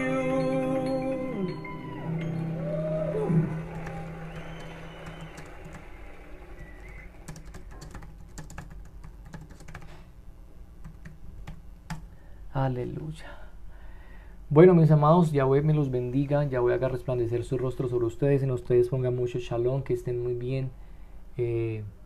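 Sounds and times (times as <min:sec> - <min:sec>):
computer keyboard typing: 0:03.7 - 0:05.9, 0:06.6 - 0:10.0, 0:10.8 - 0:12.1.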